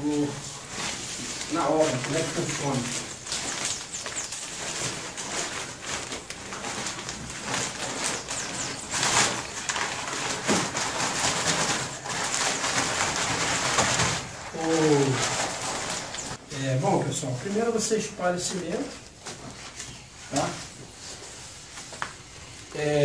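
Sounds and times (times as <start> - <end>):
paper sack rustling and flapping: 0.0 - 16.4, 17.0 - 22.7.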